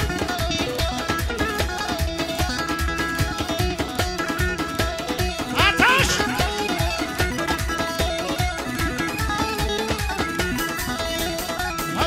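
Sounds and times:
keyboard: 0.0s - 12.0s
plucked string instrument: 0.0s - 12.0s
steady drum beat: 5.4s - 7.2s.

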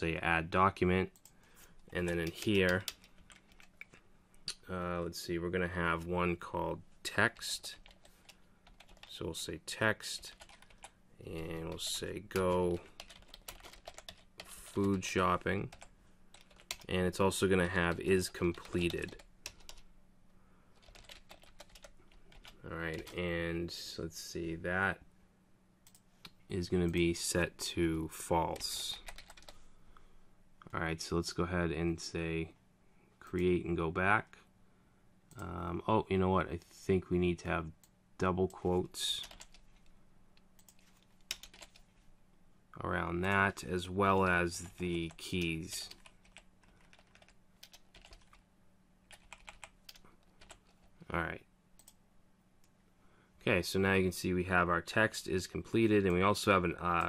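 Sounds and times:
computer keyboard typing: 1.2s - 4.0s, 7.8s - 9.1s, 10.2s - 15.1s, 15.7s - 16.9s, 17.8s - 19.8s, 20.8s - 23.2s, 28.6s - 29.6s, 39.2s - 39.6s, 40.6s - 41.8s, 44.6s - 48.4s, 49.1s - 50.9s.

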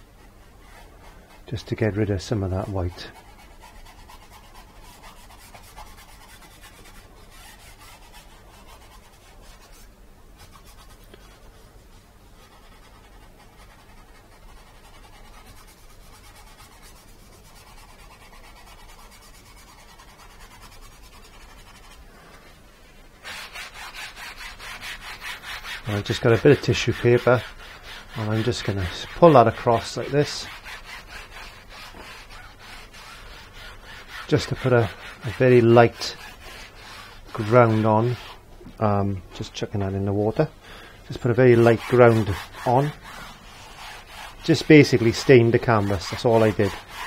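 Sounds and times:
brisk rubbing on canvas: 0.0s - 40.5s, 41.1s - 47.0s
sponge brush rubbing canvas: 0.0s - 40.5s, 41.1s - 47.0s.

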